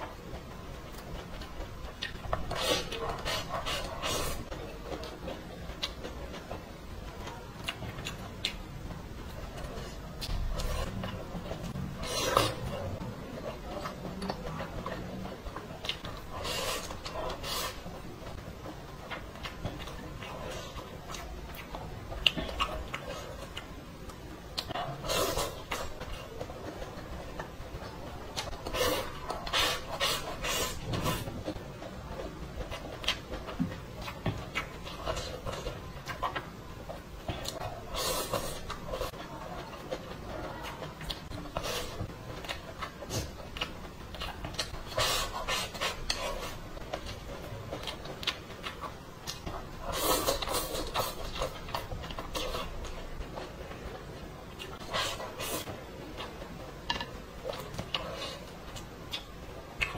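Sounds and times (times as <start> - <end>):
close chewing: 0.0 - 59.9.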